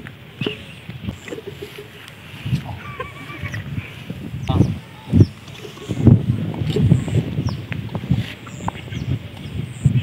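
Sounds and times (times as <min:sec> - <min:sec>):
wavering animal call: 0:02.6 - 0:06.1.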